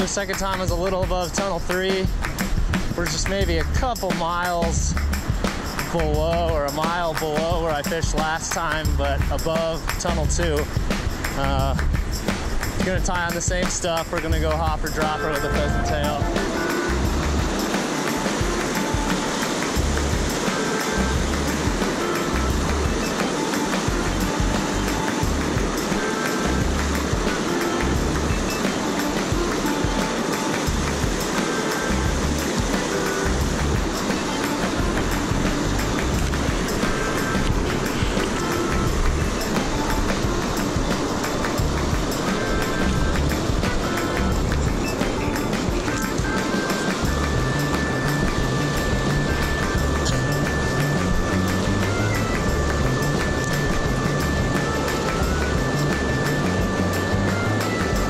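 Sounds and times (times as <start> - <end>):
instrumental background music: 0.0 - 58.0
whitewater rushing: 0.0 - 58.0.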